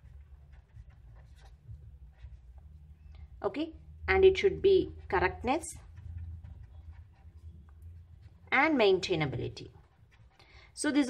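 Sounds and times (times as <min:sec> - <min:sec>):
marker pen scratching on paper: 0:00.0 - 0:11.0.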